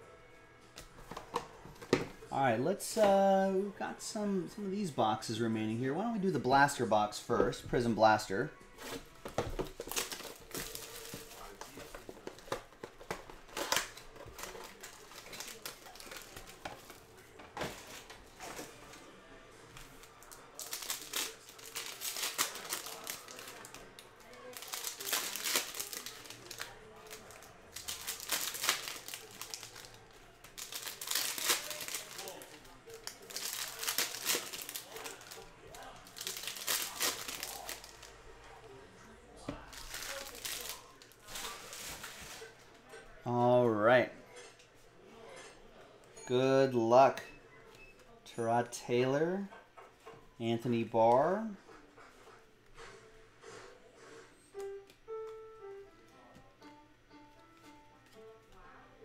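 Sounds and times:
wrappers crinkling and tearing: 8.8 - 17.0, 19.8 - 38.2, 39.6 - 42.6.

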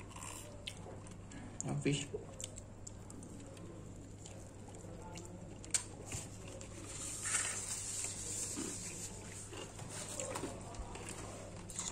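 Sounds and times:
person chewing food: 0.0 - 1.4, 2.3 - 7.3, 7.9 - 11.9.

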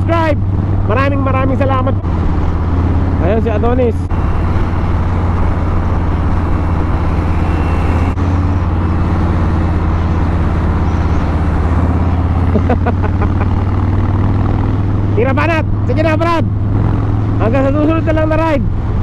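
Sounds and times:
motorcycle engine cruising: 0.0 - 19.0
wind and road noise: 0.0 - 19.0.

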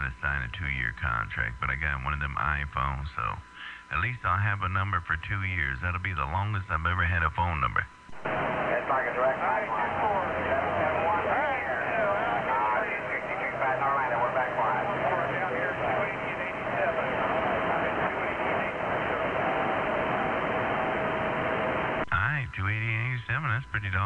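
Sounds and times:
voice over two-way radio: 0.0 - 19.6, 22.0 - 24.0
radio static: 0.0 - 24.0.

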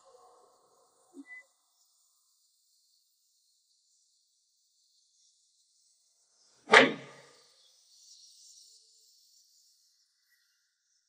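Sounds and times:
sharp hit: 6.7 - 7.2.

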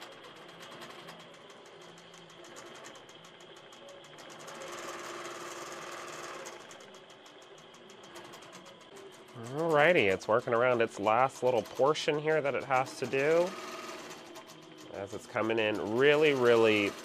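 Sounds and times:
quilting machine stitching: 0.0 - 17.0.

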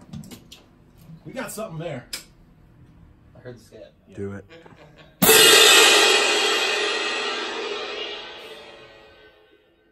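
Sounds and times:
crash cymbals clashing: 5.2 - 9.6.

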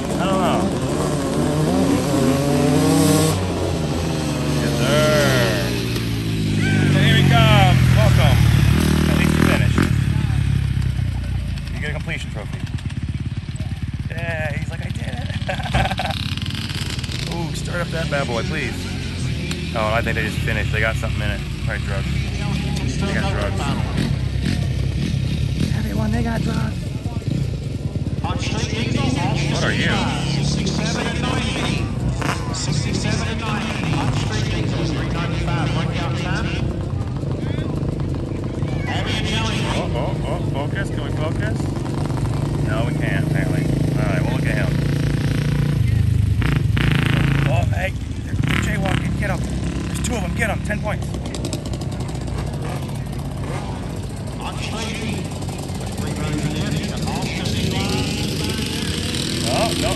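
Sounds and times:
crowd chatter: 0.0 - 16.1, 16.8 - 44.8, 47.5 - 59.9
off-road engines running: 0.0 - 59.9.

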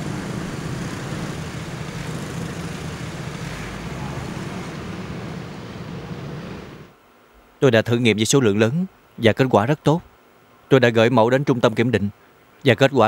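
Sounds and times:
motorbike and car engines: 0.0 - 6.9.

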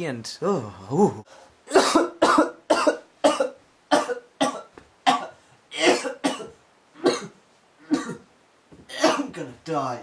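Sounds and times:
person coughing: 1.7 - 8.3, 8.9 - 9.4.

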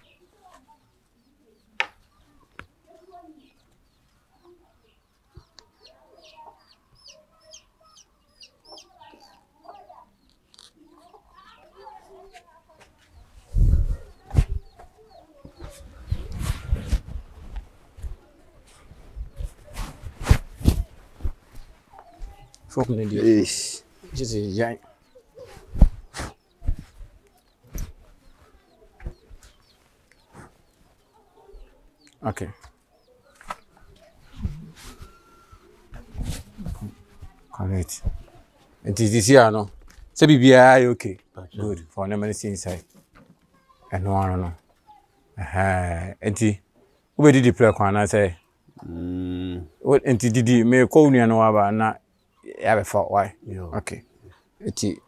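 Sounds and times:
chickens clucking: 0.0 - 20.0, 20.6 - 39.0
small chirps: 5.4 - 11.6.

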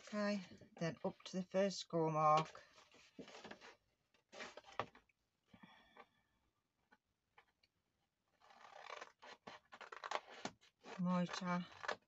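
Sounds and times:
paper sheet rustling: 2.6 - 4.9.

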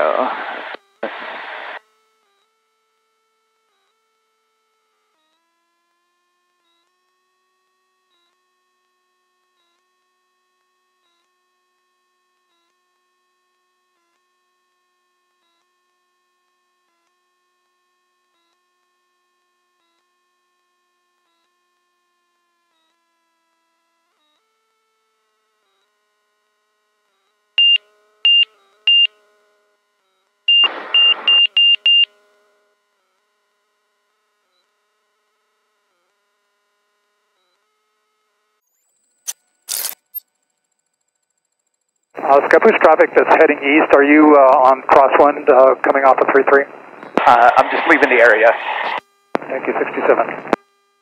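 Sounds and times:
short high electronic beeps: 27.6 - 29.1, 30.5 - 32.1, 39.7 - 40.2
crackle: 38.7 - 42.6.

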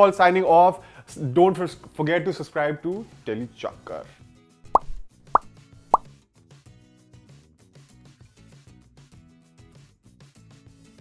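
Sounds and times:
soft background music: 0.0 - 11.0
pop sound effects: 4.7 - 6.1.

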